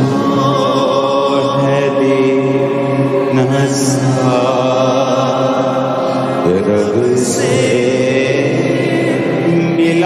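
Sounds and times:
musical accompaniment: 0.0 - 10.0
voices singing devotional song: 0.0 - 10.0.

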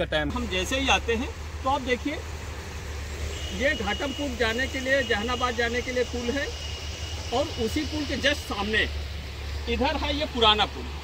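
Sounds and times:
man speaking: 0.0 - 2.3, 3.5 - 6.6, 7.3 - 9.0, 9.6 - 11.0.

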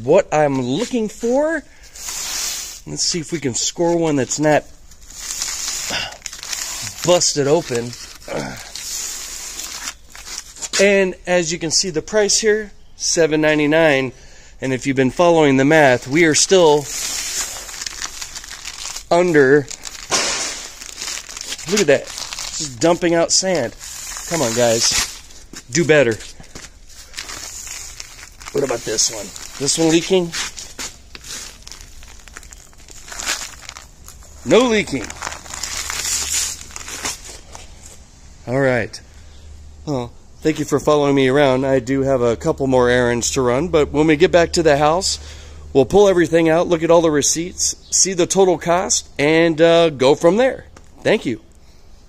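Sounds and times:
paper sacks rustling and scraping: 0.5 - 10.8, 15.8 - 38.0
man's voice: 21.6 - 25.1, 28.5 - 30.4.

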